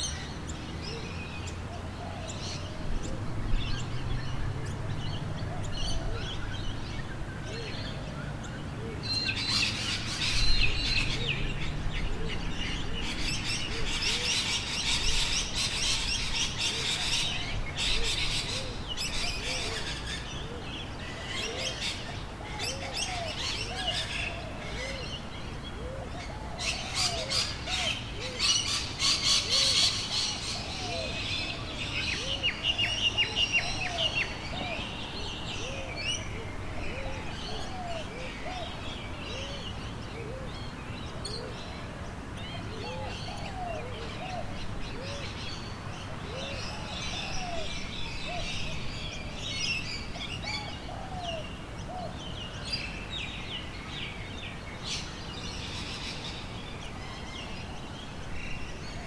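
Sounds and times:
birds chirping and trilling: 0.0s - 59.0s.

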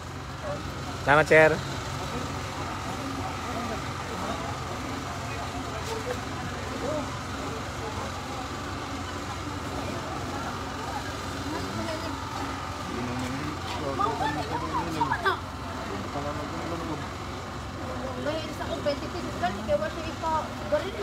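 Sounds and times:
vehicle engine hum: 0.0s - 21.0s.

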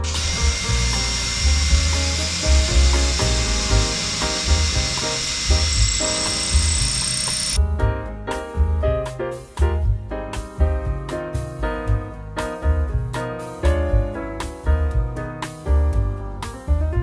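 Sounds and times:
electric drill whining: 0.0s - 7.6s.

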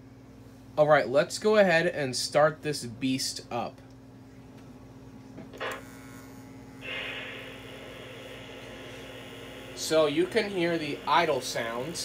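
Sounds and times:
electrical hum: 0.0s - 12.0s
steam locomotive idle hiss: 6.8s - 12.0s.

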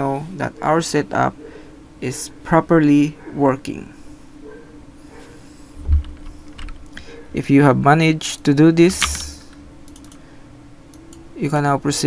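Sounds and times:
steady low hum: 0.0s - 12.0s
dull low thump: 5.8s - 6.3s
computer keyboard keystrokes: 9.0s - 10.2s.

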